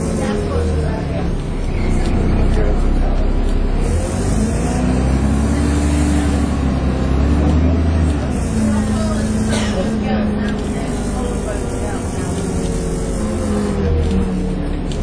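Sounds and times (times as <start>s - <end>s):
bus engine pulling: 0.0s - 15.0s.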